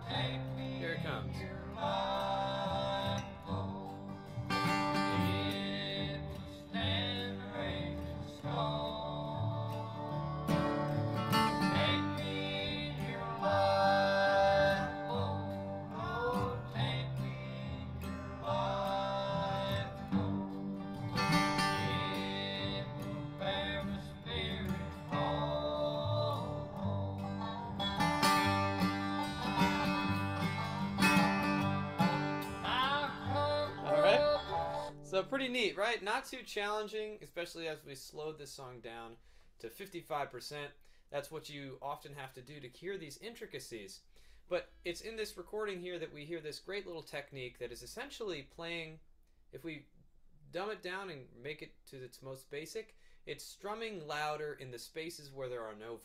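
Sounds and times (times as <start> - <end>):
person singing: 0.0 - 4.2, 4.8 - 35.1
acoustic guitar strumming: 0.0 - 35.7.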